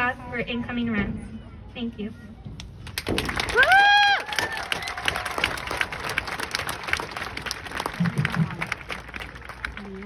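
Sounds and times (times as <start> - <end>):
audience applauding: 3.0 - 10.0.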